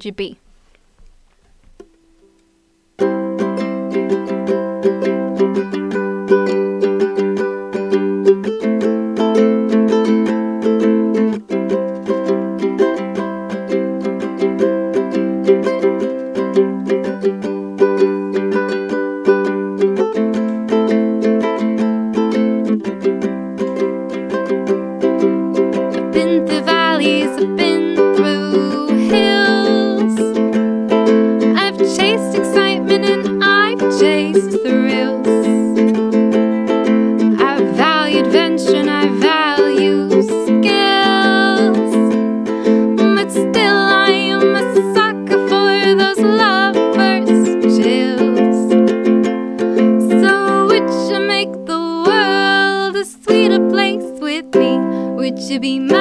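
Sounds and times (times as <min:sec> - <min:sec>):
ukulele strumming: 0:00.7 - 0:56.0
woman singing: 0:25.9 - 0:30.5, 0:31.4 - 0:36.0, 0:37.2 - 0:48.9, 0:49.8 - 0:56.0.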